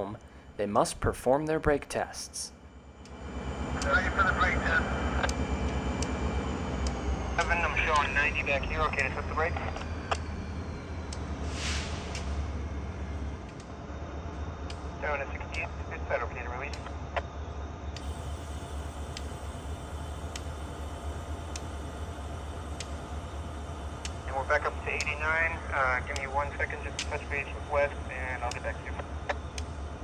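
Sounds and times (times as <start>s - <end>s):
low rumble: 2.5s - 16.8s, 17.4s - 30.0s
air brakes hissing: 11.4s - 12.6s.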